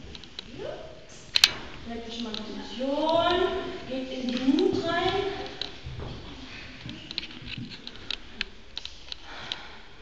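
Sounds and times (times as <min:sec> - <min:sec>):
woman speaking: 0:01.8 - 0:05.6.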